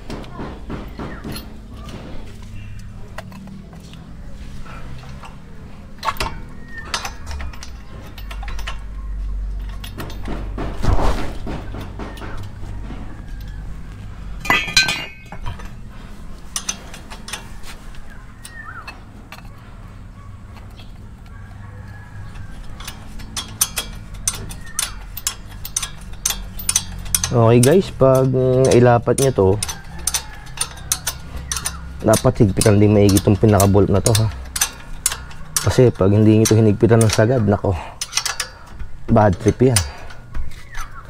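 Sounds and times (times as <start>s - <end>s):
metal brake parts clinking: 0.9s - 41.0s
wrench clicking on bolt: 6.0s - 10.4s, 16.4s - 19.6s, 20.6s - 41.0s.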